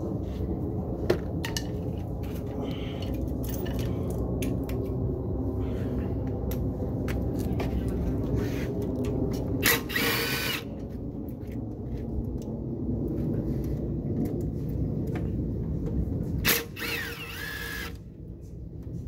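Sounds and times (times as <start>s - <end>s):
steady low rumble: 0.0s - 19.0s
power driver motor whine: 16.5s - 18.0s.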